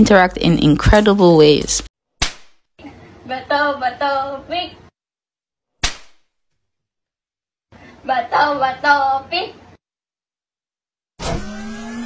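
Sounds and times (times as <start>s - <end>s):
hand slap: 2.2s - 2.6s, 5.8s - 6.3s.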